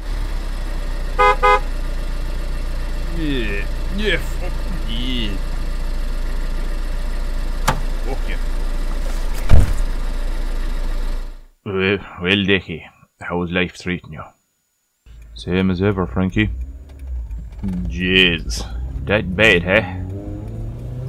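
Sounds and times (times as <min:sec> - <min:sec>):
car engine idling: 0:00.0 - 0:11.6, 0:15.1 - 0:21.0
car horn honking: 0:01.2 - 0:01.7
heavy thump: 0:07.6 - 0:08.0, 0:09.0 - 0:09.9.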